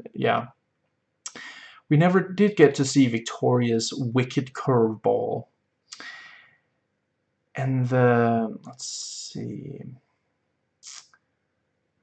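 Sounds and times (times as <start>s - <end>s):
soft breath intake: 1.3s - 1.9s, 5.9s - 6.6s.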